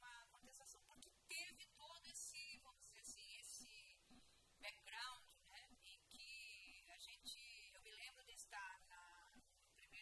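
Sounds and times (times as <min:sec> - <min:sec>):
woman talking into microphone: 0:00.0 - 0:04.0, 0:04.6 - 0:10.0.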